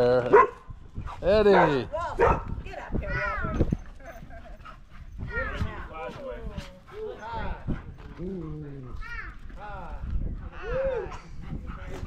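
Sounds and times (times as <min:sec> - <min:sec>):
dogs barking: 0:00.2 - 0:00.7, 0:01.4 - 0:02.6
people's voices: 0:01.5 - 0:12.0.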